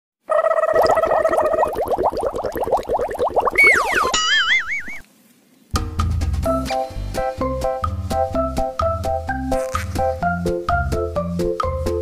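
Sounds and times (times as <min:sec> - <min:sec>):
rapid rising chirps: 0:00.6 - 0:05.0
falling whistle: 0:03.6 - 0:05.0.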